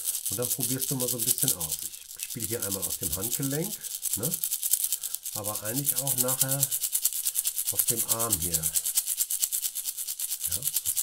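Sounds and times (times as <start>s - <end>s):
maraca rattling: 0.0s - 11.0s.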